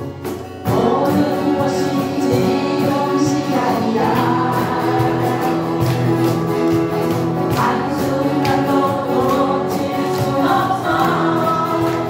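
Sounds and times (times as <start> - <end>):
acoustic guitars strumming: 0.0 - 12.0
women singing together: 0.7 - 6.4, 7.5 - 12.0.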